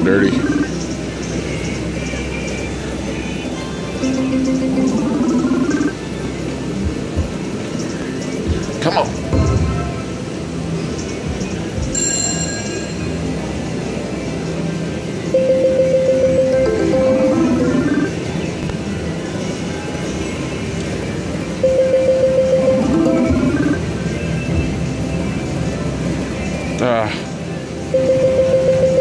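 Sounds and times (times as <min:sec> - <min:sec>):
slot machine electronic music: 0:03.9 - 0:06.0, 0:11.9 - 0:13.6, 0:15.2 - 0:18.3, 0:21.4 - 0:24.6, 0:27.8 - 0:29.0
casino background: 0:11.9 - 0:13.3
slot machine spin sound: 0:12.0 - 0:13.3, 0:21.6 - 0:23.8.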